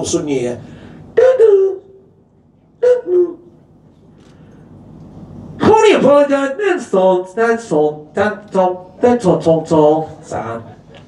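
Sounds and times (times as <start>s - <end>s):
man making garbled vocal sounds: 1.2s - 1.9s, 2.8s - 3.4s.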